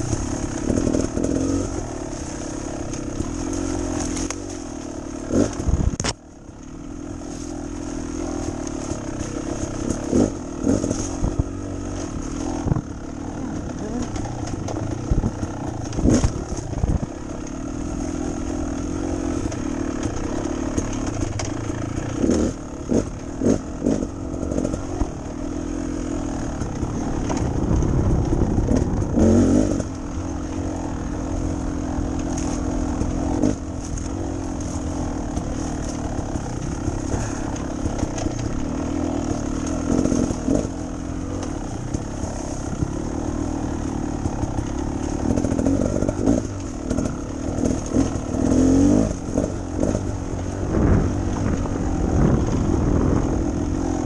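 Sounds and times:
bike knocks and rattles: 0.0s - 54.0s
trail bike engine revving: 0.0s - 54.0s.

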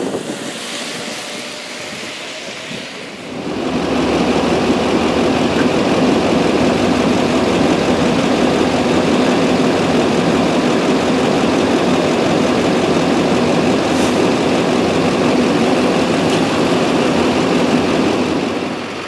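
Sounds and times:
truck engine idling: 0.0s - 19.0s.

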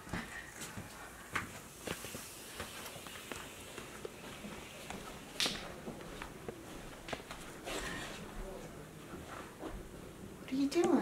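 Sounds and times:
quiet footsteps and shuffling: 0.0s - 11.0s.

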